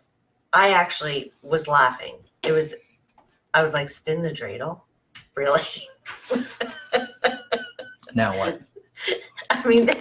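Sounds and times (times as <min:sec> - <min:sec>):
woman laughing: 0:05.6 - 0:10.0.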